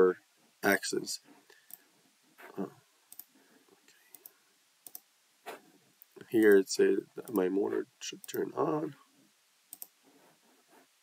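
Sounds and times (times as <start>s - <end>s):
computer mouse clicks: 4.1s - 5.1s, 9.7s - 10.0s.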